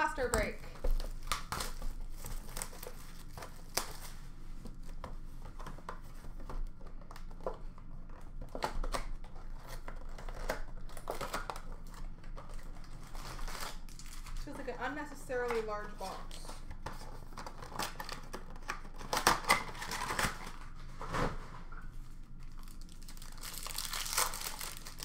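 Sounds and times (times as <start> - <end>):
rustling of cardboard and wrappers: 0.1 - 25.0.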